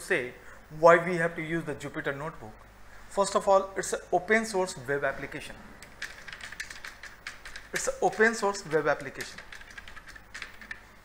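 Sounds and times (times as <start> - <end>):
person speaking: 0.0 - 10.8
keyboard key clicks: 5.8 - 8.2, 9.0 - 10.8.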